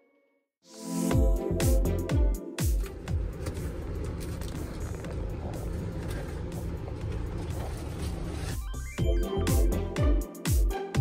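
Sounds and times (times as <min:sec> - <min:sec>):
background music: 0:00.0 - 0:04.0, 0:08.5 - 0:11.0
engine and road rumble in vehicle: 0:02.8 - 0:09.0.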